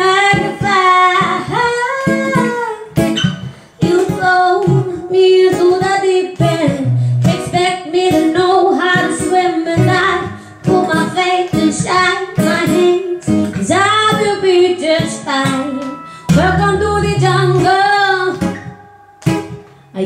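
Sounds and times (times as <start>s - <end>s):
acoustic guitar: 0.0s - 20.0s
woman singing into a microphone: 0.0s - 20.0s.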